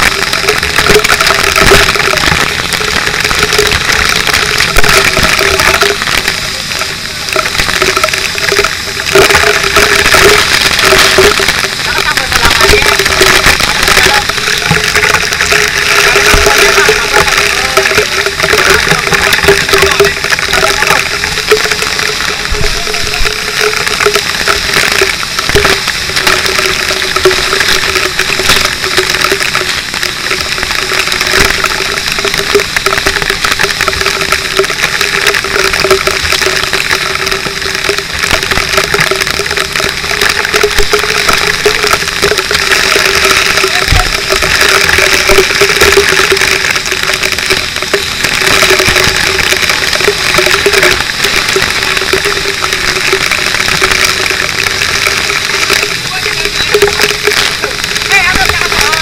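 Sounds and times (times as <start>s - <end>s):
fire hose water spraying: 0.0s - 59.0s
pump mechanical drone: 0.0s - 59.0s
spray splashing: 0.0s - 59.0s.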